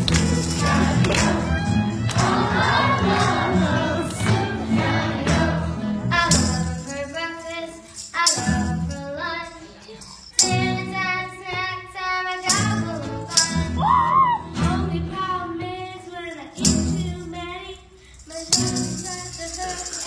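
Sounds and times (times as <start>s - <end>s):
girls singing into a microphone: 0.4s - 6.5s.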